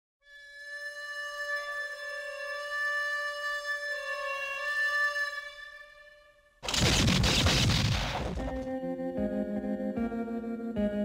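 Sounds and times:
harmonica wailing note: 0.2 - 6.4.

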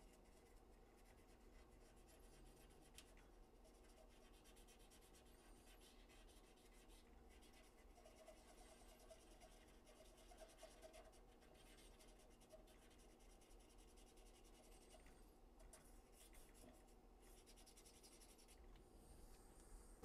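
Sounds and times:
cotton swab scrubbing circuit board: 0.0 - 18.7.

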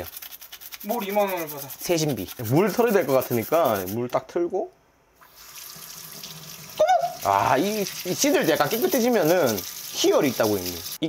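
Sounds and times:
water running into metal sink: 5.3 - 11.0
loud cry: 6.8 - 7.4.

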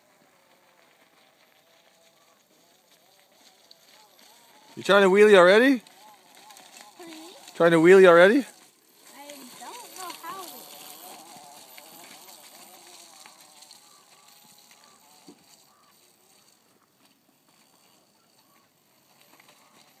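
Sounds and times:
electric motor whining: 2.0 - 20.0.

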